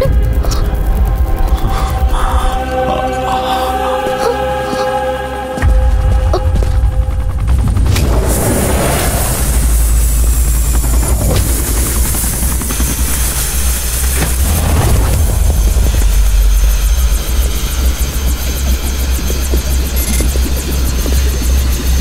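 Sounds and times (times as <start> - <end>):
helicopter rotor thrum: 0.0 - 2.7, 5.6 - 22.0.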